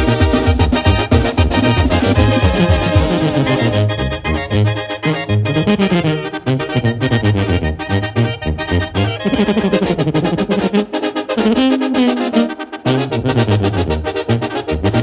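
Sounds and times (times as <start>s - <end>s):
drums keeping a beat: 0.0s - 3.9s
trombones: 0.0s - 15.0s
tuba bass line: 0.0s - 15.0s.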